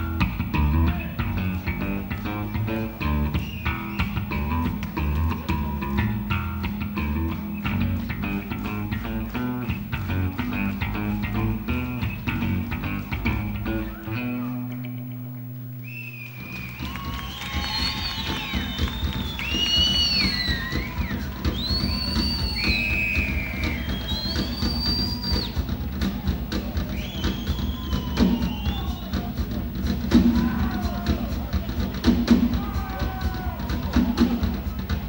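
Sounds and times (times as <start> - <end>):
live rock band: 0.0 - 35.0.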